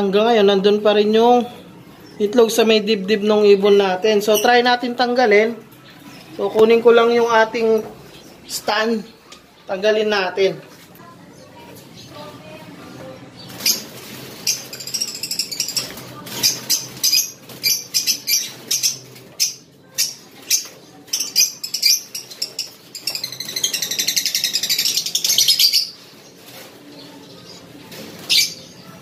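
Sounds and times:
wings flapping: 13.4 - 19.4, 22.1 - 29.0
lovebirds squawking: 13.4 - 26.6.

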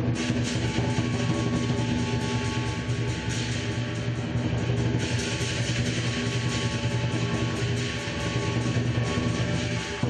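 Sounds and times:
crashing cymbals: 0.0 - 10.0
large drum beating rapidly: 0.0 - 10.0.

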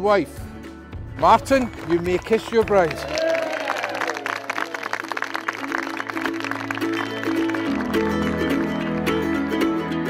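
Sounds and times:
background music: 0.0 - 10.0
guests clapping: 1.2 - 9.5.

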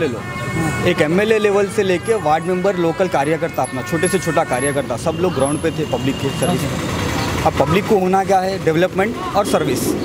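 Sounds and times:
man talking: 0.0 - 6.8, 7.4 - 10.0.

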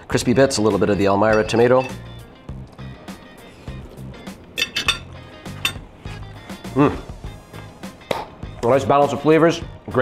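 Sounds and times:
background music: 0.0 - 10.0
cutlery clinking on ceramic plate: 1.2 - 2.2, 4.6 - 5.9
man humming approvingly: 6.6 - 7.1.

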